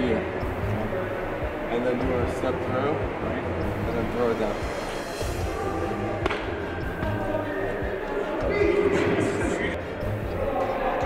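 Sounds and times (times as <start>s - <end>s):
background music: 0.0s - 11.0s
baseball smacking into mitt: 6.2s - 6.5s.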